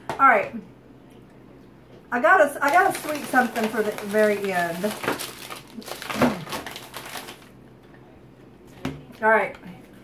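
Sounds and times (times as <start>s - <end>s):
food packaging crinkling: 2.6s - 7.6s.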